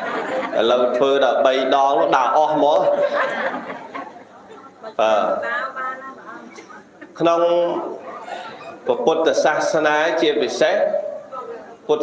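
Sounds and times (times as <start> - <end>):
man speaking: 8.9 - 11.2.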